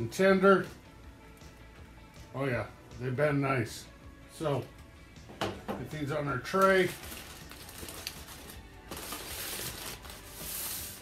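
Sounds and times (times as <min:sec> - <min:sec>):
background music: 0:00.0 - 0:11.0
aluminium foil crinkling: 0:06.5 - 0:11.0.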